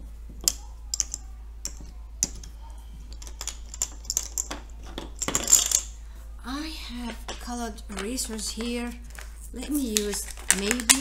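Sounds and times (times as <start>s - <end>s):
plastic counters clicking: 0.4s - 5.9s, 7.0s - 11.0s.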